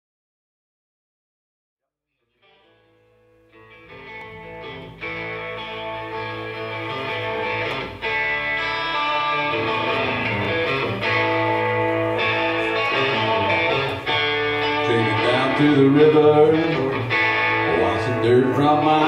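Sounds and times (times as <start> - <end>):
electric guitar chords: 2.4 - 19.0
rock band playing: 3.5 - 19.0.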